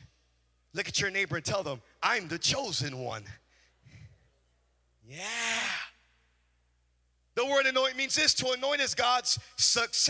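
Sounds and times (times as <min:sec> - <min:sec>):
man saying yeah: 0:05.1 - 0:06.0.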